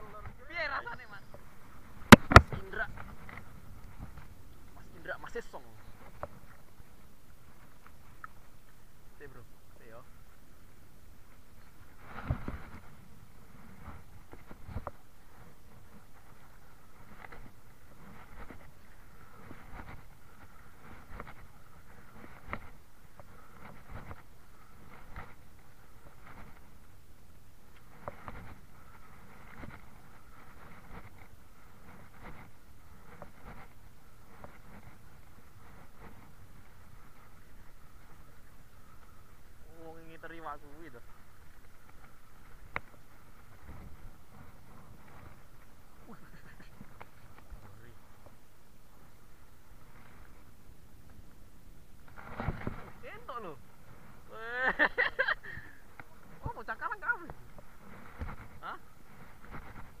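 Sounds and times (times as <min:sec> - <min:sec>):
wind: 0:00.0 - 1:00.0.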